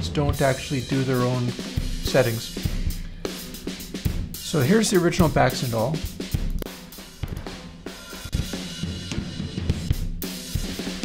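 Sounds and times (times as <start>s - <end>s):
drum kit beat: 0.0s - 11.0s.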